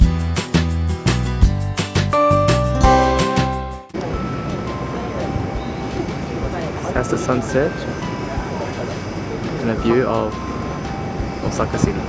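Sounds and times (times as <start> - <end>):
distant city sound: 2.8 - 12.0
wind: 3.9 - 12.0.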